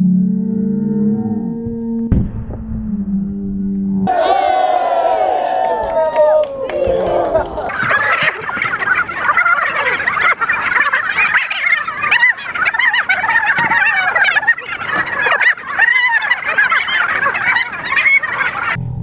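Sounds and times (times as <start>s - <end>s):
crowd whooping and yelling: 4.0s - 18.8s.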